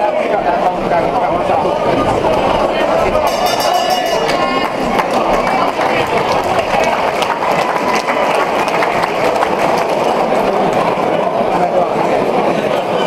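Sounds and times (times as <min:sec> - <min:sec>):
crowd talking and shouting: 0:00.0 - 0:13.0.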